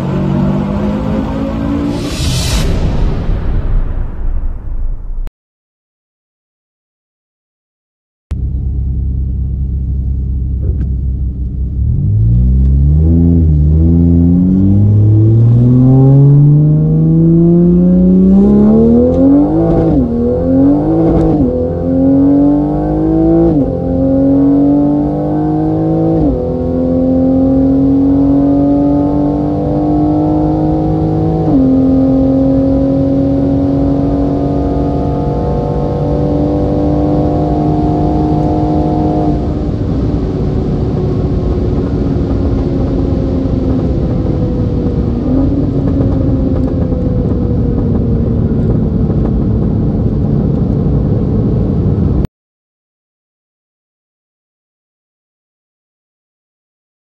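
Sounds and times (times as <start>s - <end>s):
car engine accelerating with upshifts: 0.0s - 2.1s, 8.3s - 52.3s.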